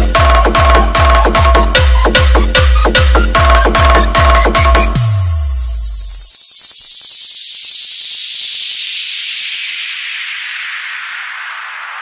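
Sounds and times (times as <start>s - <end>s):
falling white-noise sweep: 5.0s - 12.0s.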